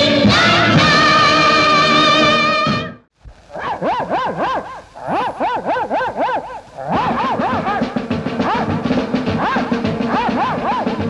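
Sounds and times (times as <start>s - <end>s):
film song with wavering voices: 0.0s - 11.0s.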